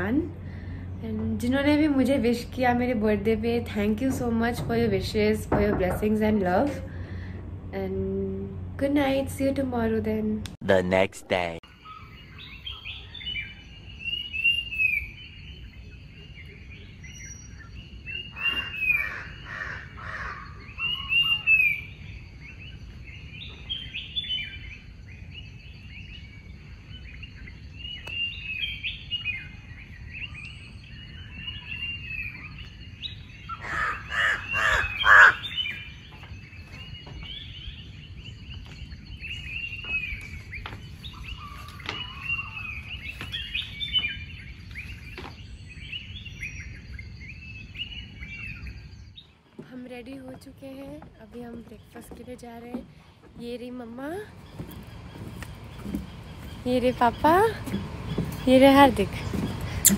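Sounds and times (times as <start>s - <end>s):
birds chirping: 0.0s - 59.9s
loud harsh rapid bird calls: 16.8s - 49.4s.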